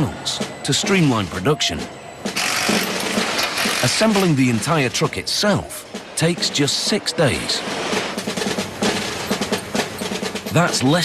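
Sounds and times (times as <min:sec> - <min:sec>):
power tool whirring: 0:02.4 - 0:04.2.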